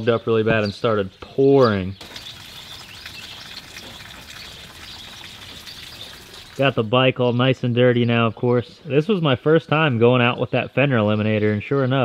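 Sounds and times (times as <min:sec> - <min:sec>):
rain on pavement: 0:02.0 - 0:06.7.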